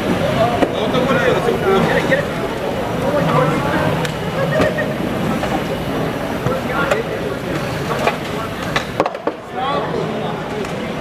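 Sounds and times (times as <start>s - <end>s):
onlookers chattering: 0.0s - 11.0s
steady noise: 0.0s - 11.0s.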